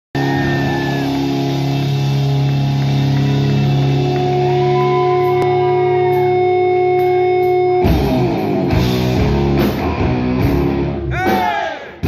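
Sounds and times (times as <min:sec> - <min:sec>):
electric guitar and bass drone: 0:00.2 - 0:11.2.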